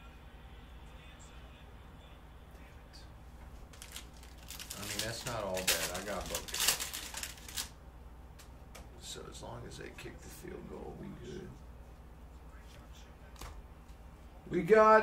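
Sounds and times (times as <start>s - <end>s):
foil wrapper tearing and crinkling: 3.7s - 7.8s.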